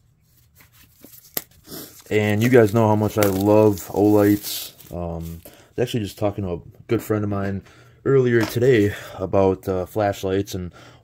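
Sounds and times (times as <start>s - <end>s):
cardboard scraping and tearing: 0.5s - 5.4s
cardboard box being handled: 2.0s - 5.4s.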